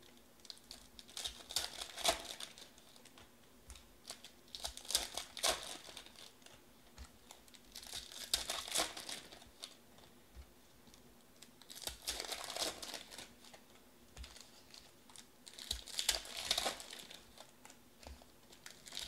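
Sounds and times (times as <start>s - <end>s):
foil wrappers crinkling and tearing: 0.4s - 3.2s, 4.0s - 6.6s, 7.2s - 10.1s, 11.6s - 13.6s, 14.2s - 17.5s, 18.5s - 19.0s.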